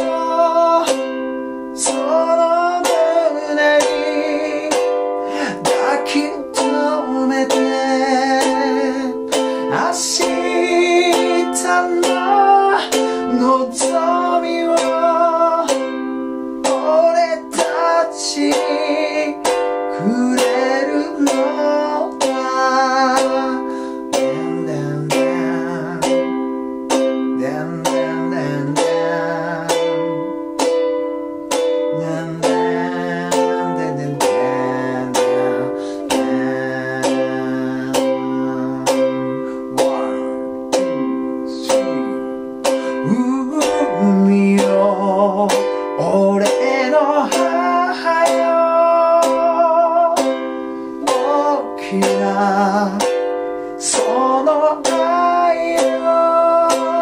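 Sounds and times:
man singing with vibrato: 0:00.0 - 0:57.0
ukulele strumming: 0:00.0 - 0:57.0.

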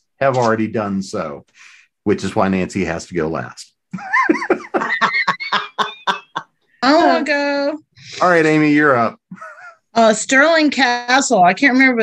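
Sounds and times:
person laughing: 0:04.0 - 0:06.4, 0:09.3 - 0:09.8.

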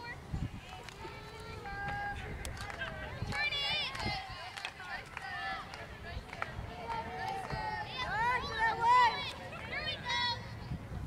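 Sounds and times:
girls shouting and chattering: 0:00.0 - 0:11.0.

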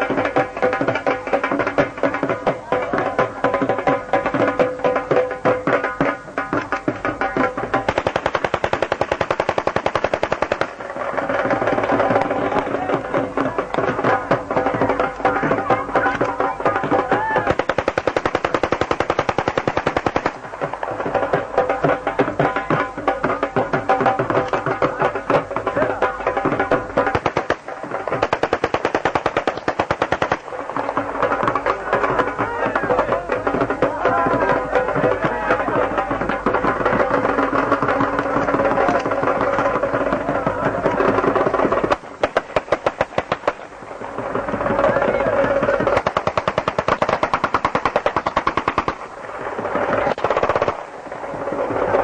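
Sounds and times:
dhol band music: 0:00.0 - 0:51.0
hissing firework crackle: 0:00.0 - 0:52.0
rapid sharp cracks: 0:05.8 - 0:52.0.

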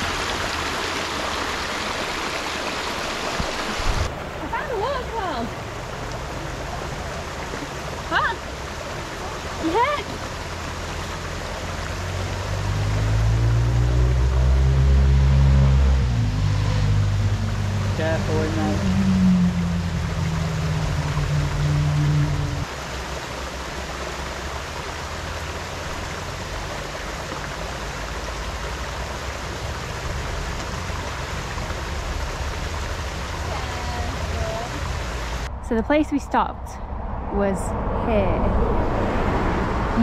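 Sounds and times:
waterfall and stream rushing: 0:00.0 - 0:35.6
wavering low drone: 0:09.0 - 0:22.9.

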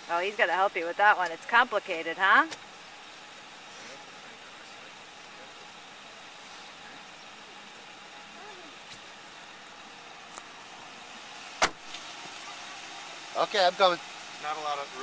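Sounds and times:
car door shutting: 0:11.6 - 0:12.1.

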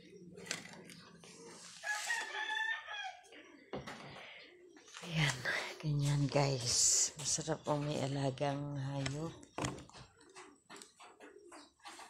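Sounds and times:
rooster crowing: 0:01.8 - 0:03.3.

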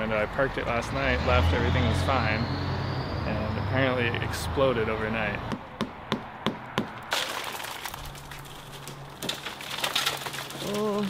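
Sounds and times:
shattered glass cracking and snapping: 0:07.1 - 0:11.0.

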